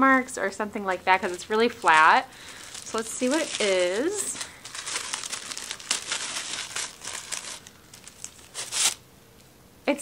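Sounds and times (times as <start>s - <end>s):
gift wrapping crinkling and tearing: 1.2s - 9.0s.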